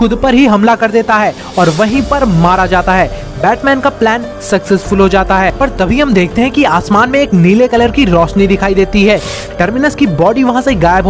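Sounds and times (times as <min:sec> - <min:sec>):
man narrating: 0:00.0 - 0:11.0
short hiss: 0:01.2 - 0:03.4, 0:09.1 - 0:09.6.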